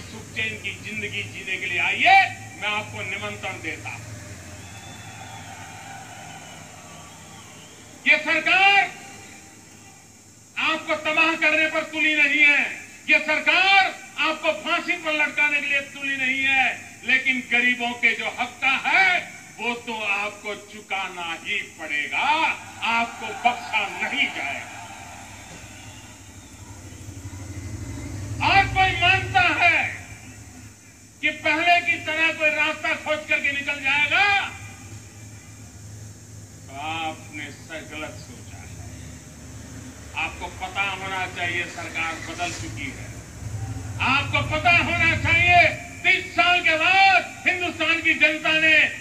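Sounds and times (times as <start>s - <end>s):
steady hiss: 0.0s - 49.0s
faint even hiss: 24.6s - 49.0s.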